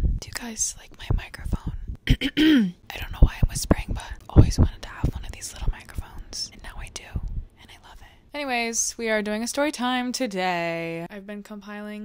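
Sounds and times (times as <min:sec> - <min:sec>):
woman whispering close to microphone: 0:00.2 - 0:01.8, 0:02.9 - 0:08.2.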